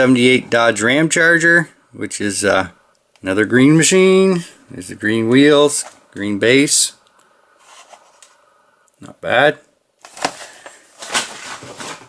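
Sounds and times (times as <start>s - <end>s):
plastic packaging crackling: 10.0s - 12.0s.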